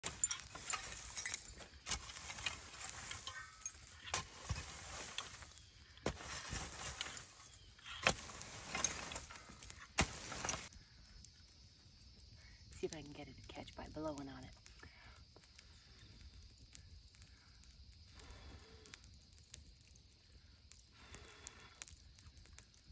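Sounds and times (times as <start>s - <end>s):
metal rake scraping ash: 0.0s - 10.7s
rake tines knocking debris: 0.0s - 10.7s.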